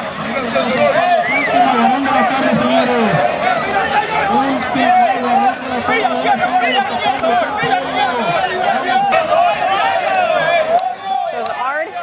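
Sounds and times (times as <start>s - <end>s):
men talking: 0.0s - 11.4s
crowd chatter: 0.0s - 12.0s.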